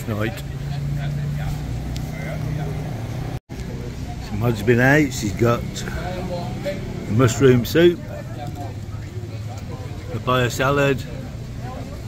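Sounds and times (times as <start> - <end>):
engine humming: 0.0 - 12.0
faint voices: 0.0 - 12.0.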